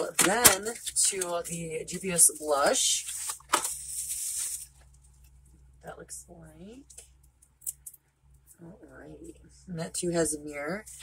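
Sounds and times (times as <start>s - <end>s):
makeup palette rustling: 0.0s - 1.6s, 2.2s - 5.3s.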